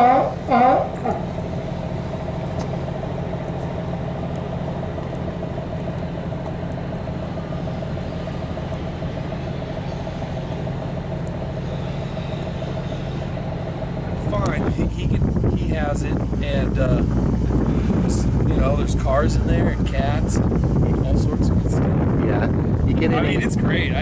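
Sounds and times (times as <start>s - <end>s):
boat engine idling: 0.0s - 24.0s.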